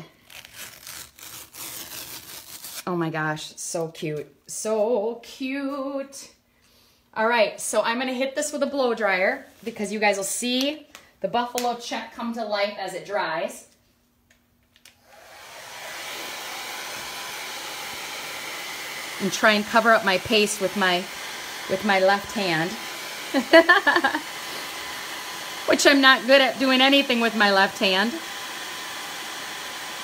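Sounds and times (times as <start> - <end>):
blow dryer running: 15.0 - 30.0.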